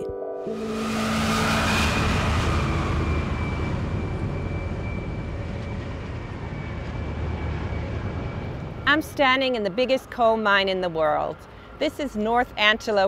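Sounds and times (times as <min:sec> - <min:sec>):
thin high whine: 0:00.4 - 0:09.0
haul truck engine rumble: 0:00.6 - 0:11.8.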